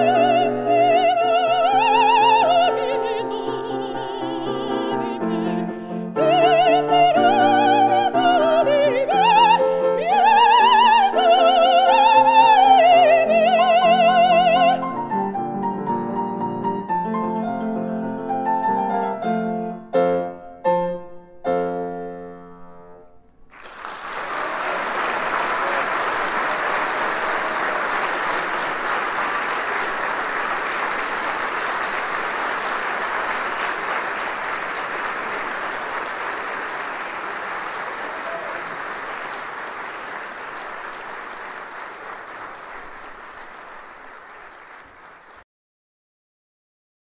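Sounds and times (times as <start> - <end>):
audience applauding: 0.0 - 2.7, 23.5 - 45.4.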